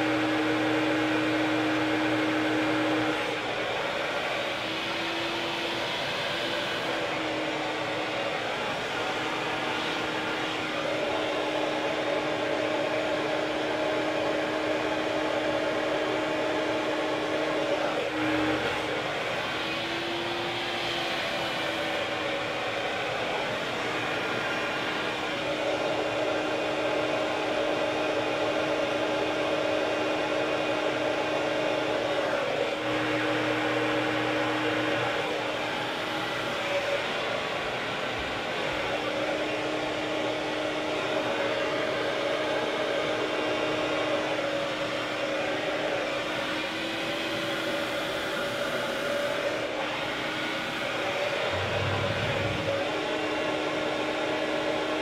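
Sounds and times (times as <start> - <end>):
hair dryer blowing: 0.0 - 55.0.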